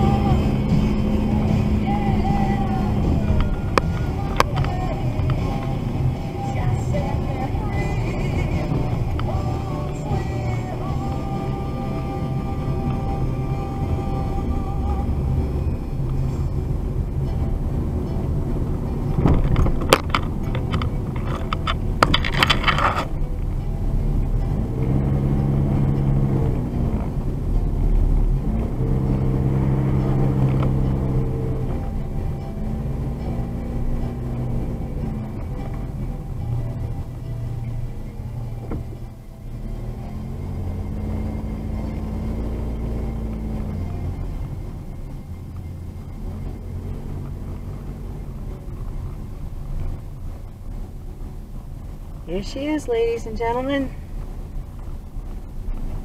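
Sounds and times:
background music: 0.0s - 56.0s
car engine and road rumble: 0.0s - 56.0s
knocks and rattles: 17.2s - 25.0s.

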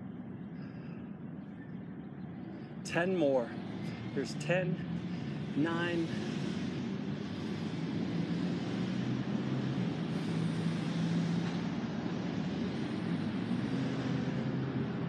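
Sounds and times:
distant engine rumble: 0.0s - 15.0s.

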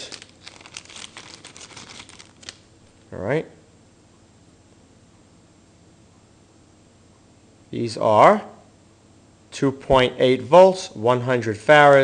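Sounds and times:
plastic bag crinkling: 0.0s - 2.7s.

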